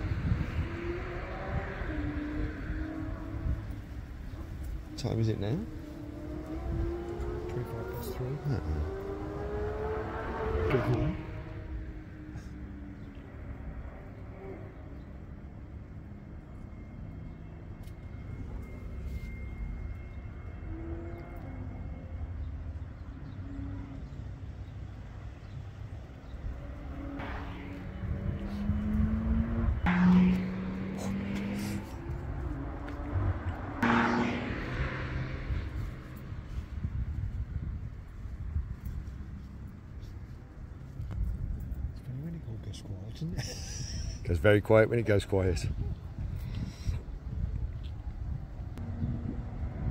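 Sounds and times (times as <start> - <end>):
car engines revving: 0.0 - 41.2, 42.0 - 49.9
low outdoor rumble: 10.0 - 49.9.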